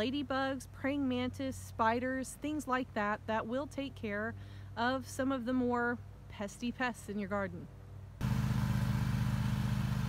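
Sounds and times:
engine idling: 0:08.2 - 0:10.0.

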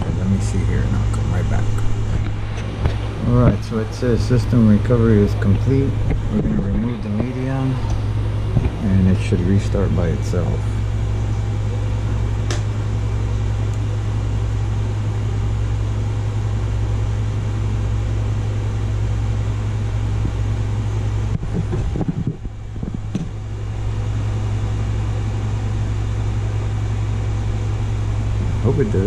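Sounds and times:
fan whoosh: 0:00.0 - 0:29.0
steady low hum: 0:00.0 - 0:29.0.

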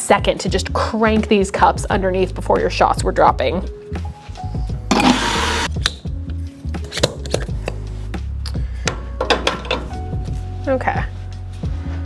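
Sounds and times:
background music: 0:00.0 - 0:12.0
cups clinking: 0:04.9 - 0:05.6
espresso machine hiss: 0:04.9 - 0:05.7.

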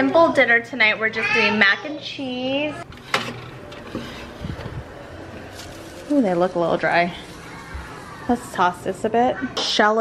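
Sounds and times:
oven rack clunks: 0:03.0 - 0:04.7.

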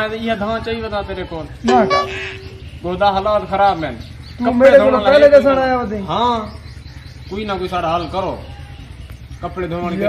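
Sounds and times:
men talking: 0:00.0 - 0:08.5, 0:09.4 - 0:10.0
birds chirping: 0:00.0 - 0:10.0.

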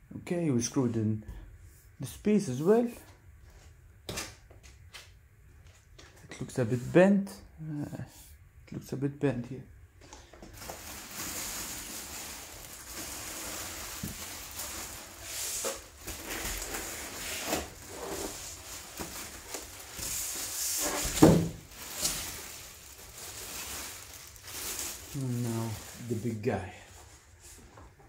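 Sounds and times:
handling rustling: 0:10.5 - 0:26.4.

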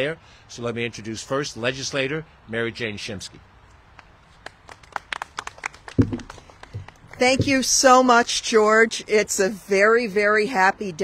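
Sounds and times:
people clapping: 0:04.0 - 0:07.6
single thump: 0:06.0 - 0:07.7.

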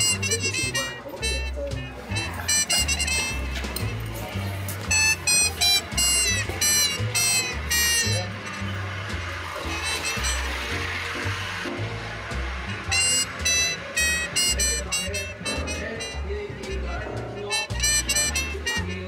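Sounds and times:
bright lead instrument phrases: 0:00.0 - 0:19.0
jazz bass line: 0:00.0 - 0:19.0.

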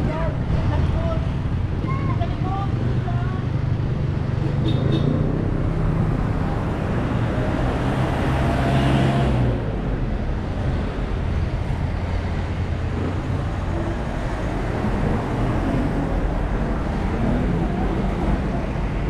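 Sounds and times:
vehicle engines rumbling: 0:00.0 - 0:19.0.

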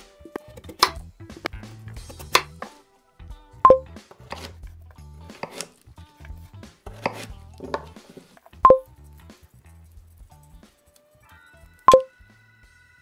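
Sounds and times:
knife cutting on wooden board: 0:02.0 - 0:02.7, 0:04.1 - 0:04.6, 0:05.3 - 0:08.5
electronic two-tone beep: 0:03.7 - 0:03.9, 0:11.9 - 0:12.1.

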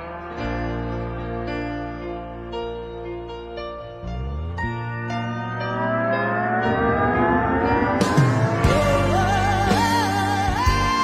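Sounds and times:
keyboard chords: 0:00.0 - 0:11.0
lap steel guitar gliding: 0:03.8 - 0:10.4
drums and rock band: 0:08.0 - 0:11.0.

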